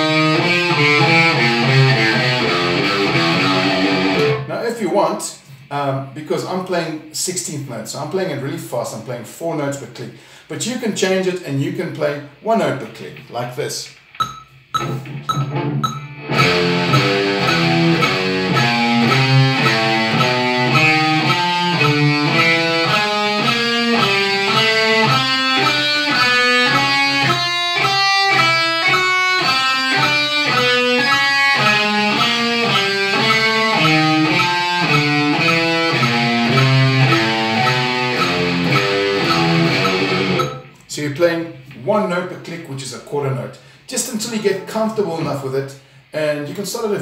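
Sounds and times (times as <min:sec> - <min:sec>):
metronome clicks: 0:00.0 - 0:04.5, 0:13.9 - 0:40.9
electric guitar single notes: 0:00.0 - 0:04.6, 0:14.2 - 0:40.9.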